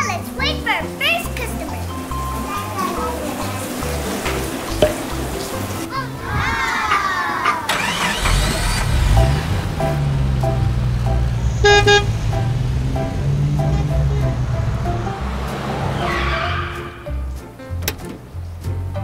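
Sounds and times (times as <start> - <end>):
electronic horn beep: 11.6 - 12.1.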